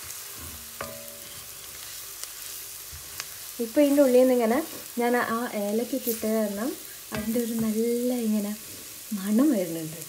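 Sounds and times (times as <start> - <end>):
wooden spoon stirring: 0.0 - 8.7
onions sizzling in a pot: 0.0 - 10.0
spoon knocking on pot: 0.5 - 1.5, 7.1 - 7.8.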